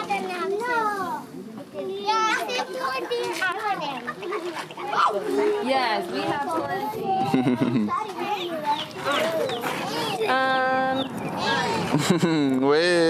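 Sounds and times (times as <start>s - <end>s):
children chattering and calling out: 0.0s - 13.0s.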